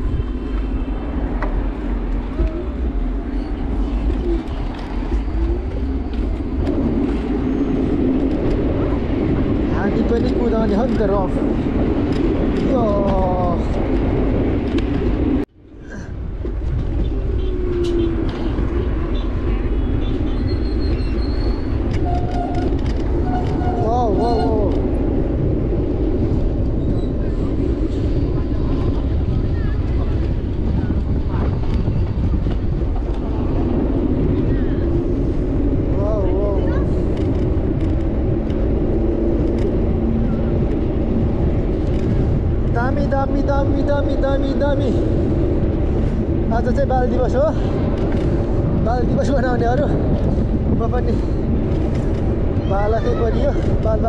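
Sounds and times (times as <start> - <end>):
wind rushing over microphone: 0.0 - 54.0.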